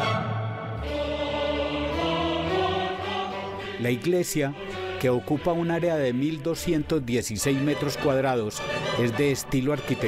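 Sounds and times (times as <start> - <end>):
choir singing held chords: 0.0 - 6.3.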